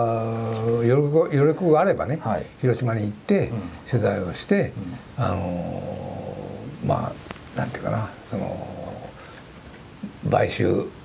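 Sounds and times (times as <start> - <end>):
man murmuring hesitantly: 0.0 - 1.1, 3.4 - 9.2.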